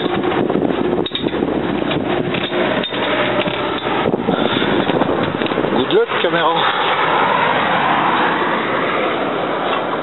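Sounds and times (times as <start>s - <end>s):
truck running and road noise: 0.0s - 10.0s
wind buffeting microphone: 0.0s - 10.0s.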